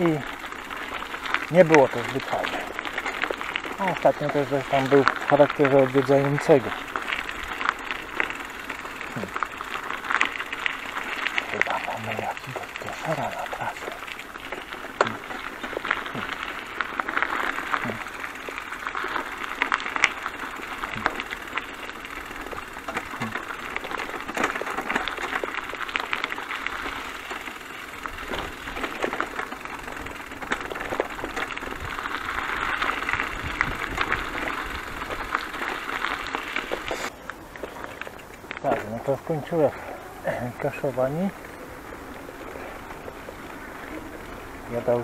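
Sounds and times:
bicycle tyres rolling on gravel: 0.0 - 45.0
bike clicks and rattles: 0.0 - 45.0.

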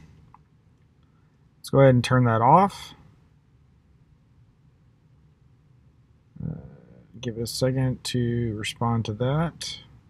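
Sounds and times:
man saying uh: 6.4 - 9.8.

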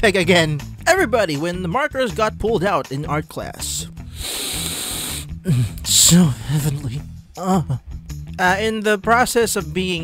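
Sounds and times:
person sniffing: 4.0 - 5.9.

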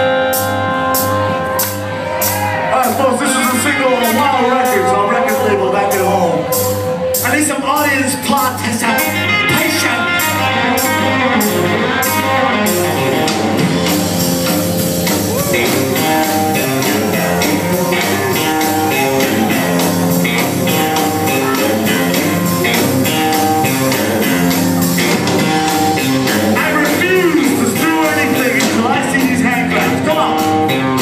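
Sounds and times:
rockabilly band playing live: 0.0 - 31.0.

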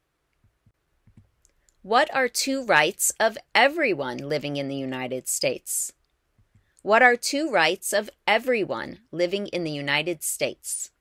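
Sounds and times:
person speaking: 1.8 - 5.9, 6.8 - 11.0.

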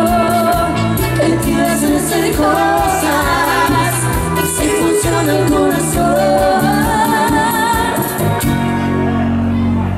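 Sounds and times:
live band playing: 0.0 - 9.9
pulsing bass: 0.0 - 9.9.

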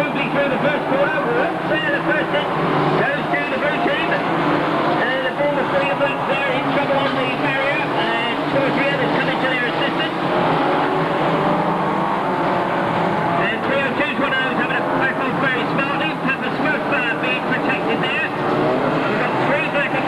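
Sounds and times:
commentator speaking: 0.0 - 10.4, 13.3 - 20.0
racing car engines revving: 0.0 - 20.0.

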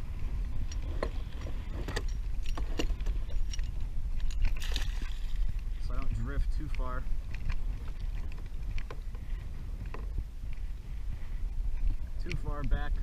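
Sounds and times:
gear clicking and clinking: 0.0 - 13.0
wind rumbling on microphone: 0.0 - 13.0.

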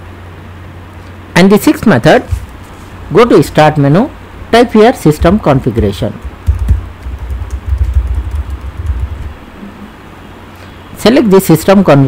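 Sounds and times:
computer keyboard typing: 5.2 - 9.3.

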